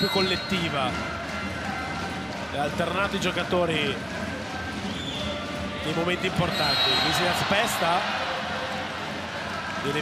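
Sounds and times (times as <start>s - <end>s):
referee whistle blast: 0.0s - 0.7s, 6.5s - 7.3s
crowd noise: 0.0s - 10.0s.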